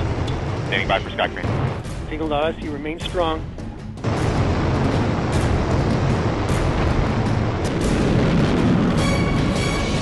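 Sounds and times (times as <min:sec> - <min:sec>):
background music: 0:00.0 - 0:10.0
rumbling engine roar: 0:00.0 - 0:10.0.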